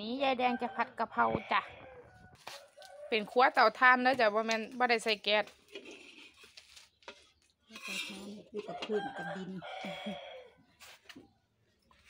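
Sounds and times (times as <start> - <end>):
woman speaking: 0.0 - 1.8, 3.1 - 5.5
rooster crowing: 8.7 - 10.6.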